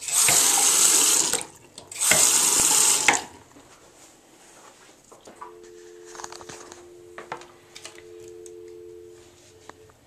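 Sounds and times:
water running from faucet into sink: 0.0s - 3.4s.

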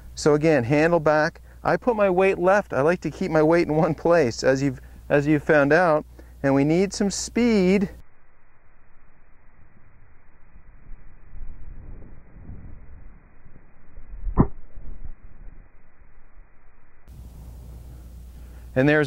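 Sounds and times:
golf club striking ball: 14.4s - 14.7s.

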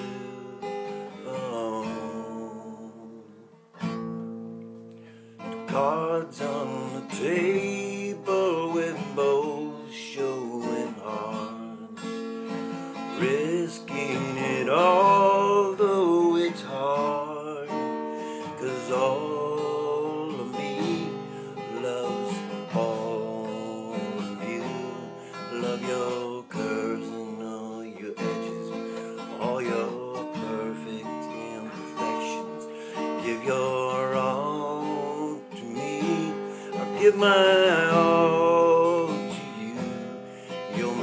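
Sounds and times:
man singing ballad: 0.0s - 3.5s, 5.5s - 41.0s
acoustic guitar strumming: 0.0s - 41.0s.

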